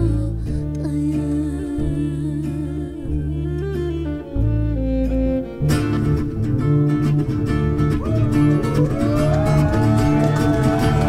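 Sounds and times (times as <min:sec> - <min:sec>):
double bass notes: 0:00.0 - 0:11.0.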